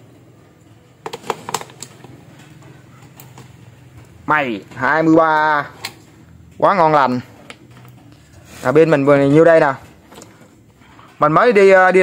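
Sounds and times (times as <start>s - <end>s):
batteries clicking into charger slots: 1.0s - 4.1s.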